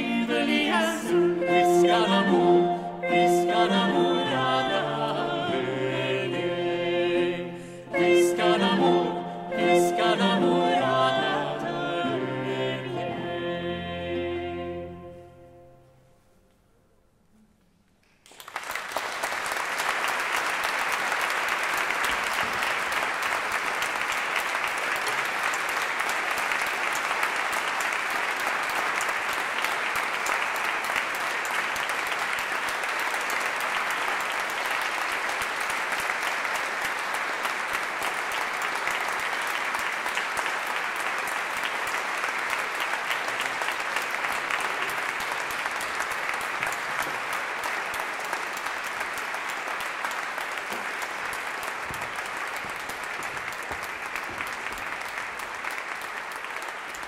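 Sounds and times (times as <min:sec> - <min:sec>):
audience applauding: 0:18.0 - 0:57.0.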